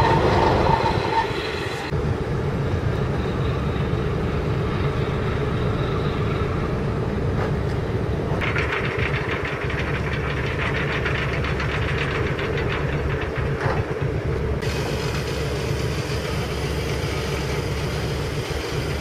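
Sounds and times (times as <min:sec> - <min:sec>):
boat diesel engine running: 0:02.0 - 0:19.0.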